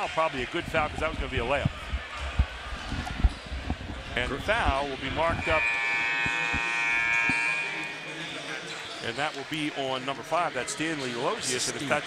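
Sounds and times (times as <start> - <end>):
scoreboard horn buzzing: 5.1 - 8.3.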